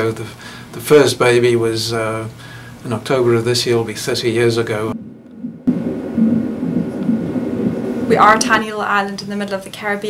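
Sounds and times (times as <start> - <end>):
whooshing heartbeat pulse: 4.9 - 8.6.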